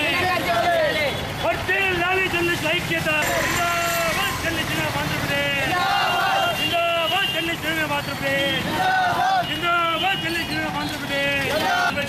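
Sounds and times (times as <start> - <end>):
men shouting slogans: 0.0 - 1.1, 1.8 - 12.0
street traffic: 0.0 - 12.0.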